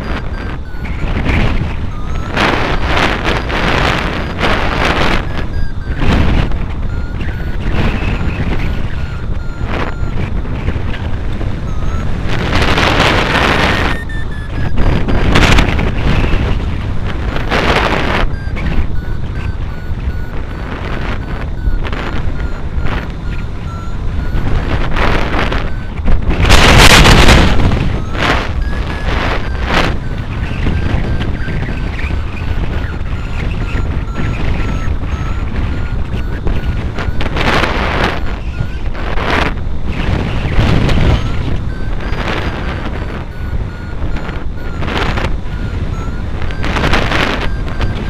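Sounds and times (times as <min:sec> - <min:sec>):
variometer beeping: 0:00.0 - 0:48.0
wind rushing over microphone: 0:00.0 - 0:48.0.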